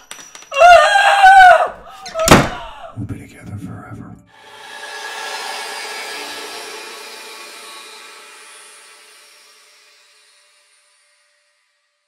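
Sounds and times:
woman screaming behind gag: 0:00.6 - 0:02.9
steady droning hum: 0:04.5 - 0:11.6.

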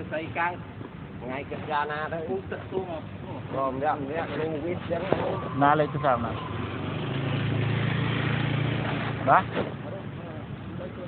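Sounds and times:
vehicle passing by: 0:04.9 - 0:09.9.

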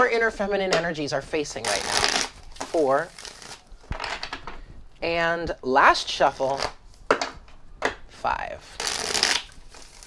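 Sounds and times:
cards being shuffled: 0:08.8 - 0:10.0.

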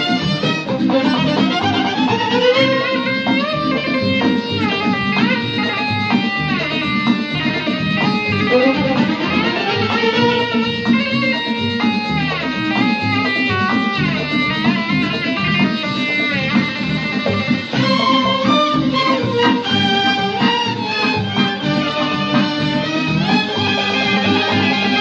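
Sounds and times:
orchestra playing: 0:00.0 - 0:05.6, 0:08.3 - 0:11.0, 0:17.7 - 0:25.0
electric guitar melody: 0:00.0 - 0:25.0.

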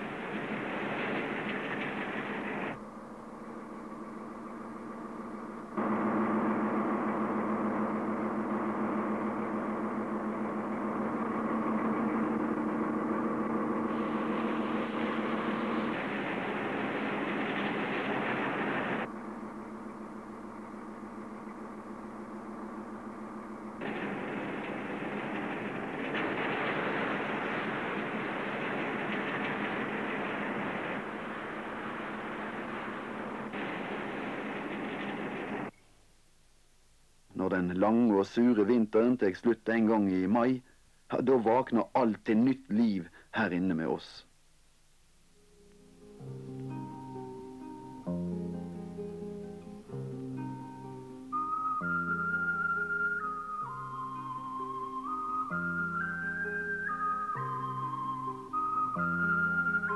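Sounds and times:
ice and water rushing along hull: 0:00.0 - 0:02.8, 0:09.6 - 0:19.1, 0:23.8 - 0:35.7
ship engine hum: 0:00.0 - 0:35.7, 0:44.6 - 0:59.9.

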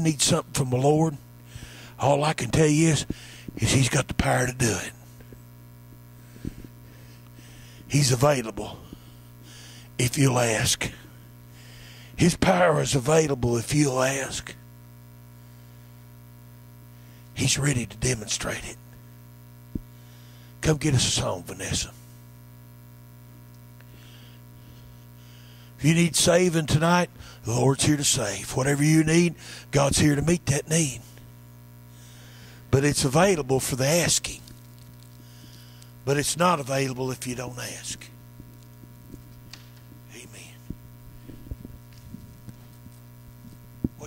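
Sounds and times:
man speaking into a microphone: 0:00.0 - 0:01.2, 0:02.0 - 0:05.0, 0:07.9 - 0:08.9, 0:10.0 - 0:11.0, 0:12.2 - 0:14.6, 0:17.4 - 0:18.8, 0:20.6 - 0:22.0, 0:25.8 - 0:31.1, 0:32.7 - 0:34.5, 0:36.0 - 0:38.1, 0:40.1 - 0:40.6
electrical mains hum: 0:00.0 - 0:44.0.

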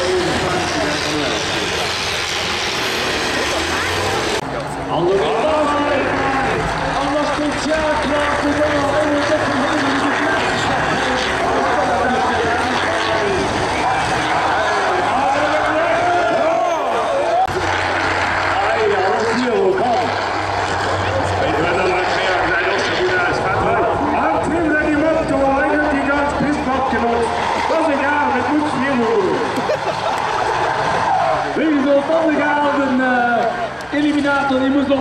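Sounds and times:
diesel engines under load: 0:00.0 - 0:35.0
announcer over loudspeaker: 0:04.5 - 0:20.3, 0:20.9 - 0:29.6, 0:31.2 - 0:35.0.

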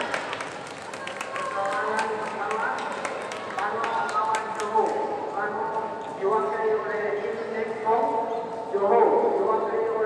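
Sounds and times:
people talking in a hall: 0:00.0 - 0:10.0.

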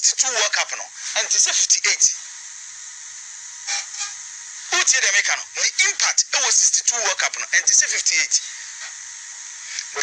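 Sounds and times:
radio broadcast hiss: 0:00.0 - 0:10.0.

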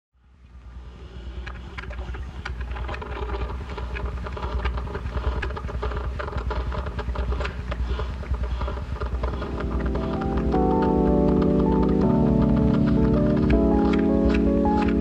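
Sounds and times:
low rumble: 0:00.6 - 0:14.6
vinyl clicks and crackle: 0:01.4 - 0:15.0
sustained keyboard chord: 0:09.0 - 0:15.0.

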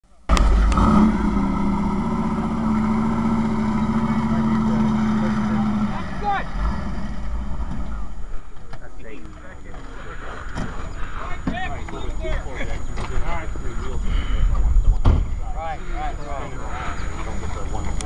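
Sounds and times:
car engine running: 0:00.0 - 0:18.0
voices: 0:00.0 - 0:18.0.

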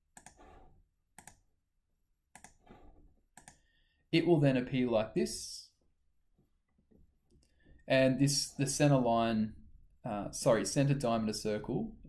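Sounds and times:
computer mouse clicks: 0:00.1 - 0:00.6, 0:01.2 - 0:01.4, 0:02.3 - 0:03.7
man speaking: 0:04.2 - 0:05.8, 0:07.9 - 0:12.0.

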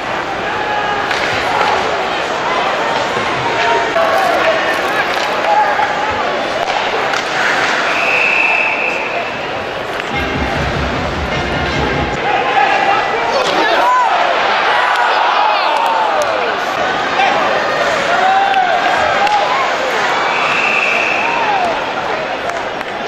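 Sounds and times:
crowd chatter: 0:00.0 - 0:23.0
hockey sticks hitting puck: 0:01.0 - 0:01.9, 0:04.3 - 0:08.2
low rumble: 0:10.1 - 0:12.4.

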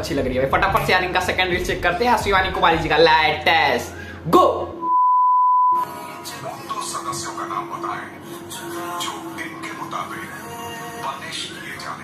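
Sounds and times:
censor bleep: 0:04.8 - 0:05.8.

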